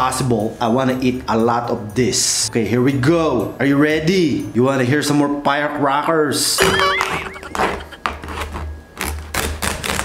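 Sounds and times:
knife cutting crackling skin: 8.2s - 10.0s.

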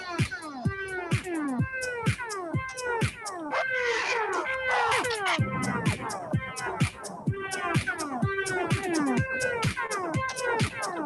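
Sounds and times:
electronic dance music: 5.1s - 11.0s.

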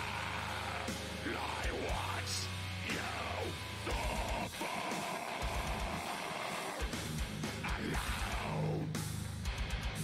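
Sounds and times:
distorted electric guitars: 0.0s - 10.0s
drums: 0.0s - 10.0s.

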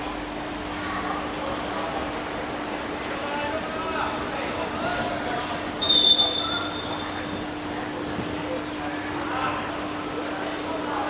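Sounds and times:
referee's whistle blast: 5.8s - 7.3s.

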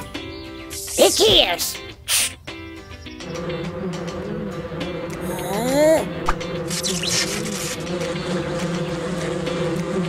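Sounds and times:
cartoon bees buzzing: 3.0s - 10.0s.

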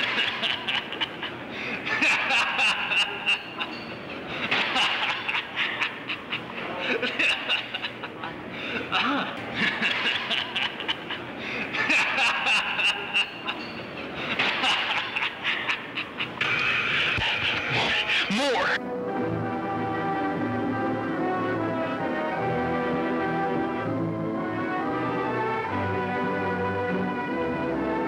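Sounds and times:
music: 17.4s - 28.0s.

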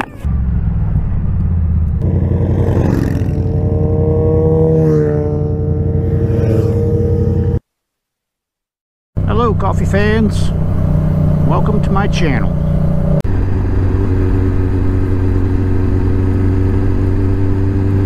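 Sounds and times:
motorcycle engine running: 0.2s - 7.6s, 9.2s - 18.0s.

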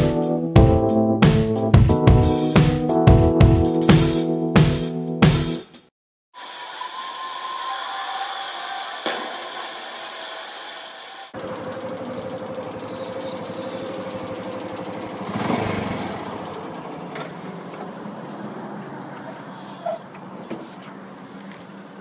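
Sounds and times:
motorcycle engine running: 11.4s - 17.2s.

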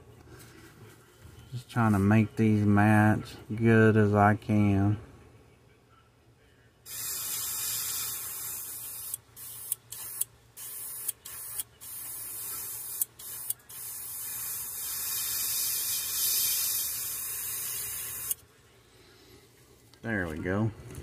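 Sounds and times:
airbrush spraying paint: 6.9s - 18.4s.

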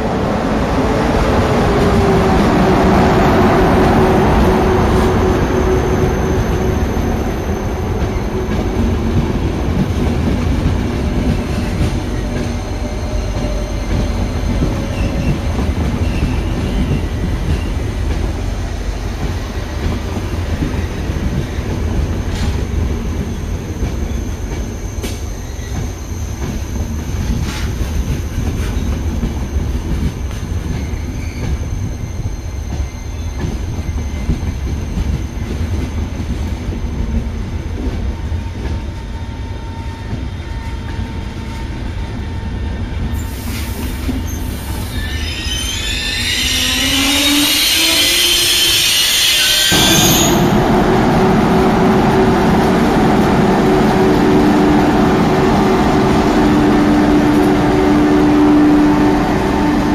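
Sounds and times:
train wheels rumbling on rail: 0.0s - 59.9s.

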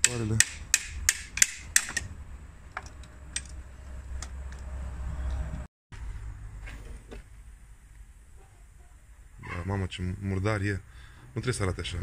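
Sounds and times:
tools knocking and clicking: 0.0s - 2.1s, 2.7s - 3.6s.

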